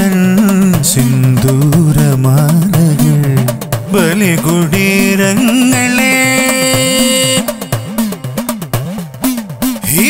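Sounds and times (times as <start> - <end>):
backing track with quick drum beat: 0.0 - 10.0
man singing held note: 4.0 - 8.1.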